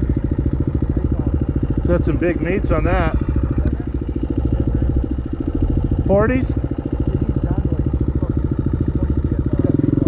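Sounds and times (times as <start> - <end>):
dirt bike engine idling: 0.0 - 10.0.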